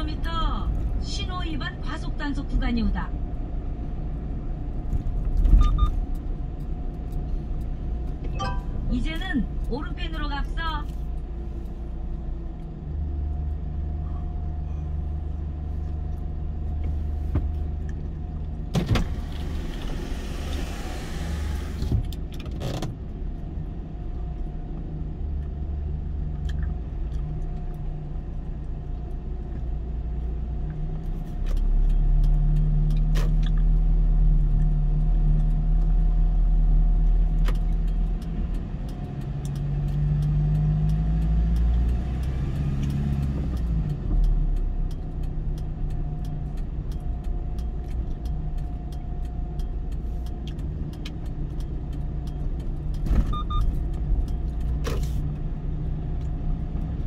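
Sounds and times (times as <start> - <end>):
car engine and road rumble: 0.0 - 57.0.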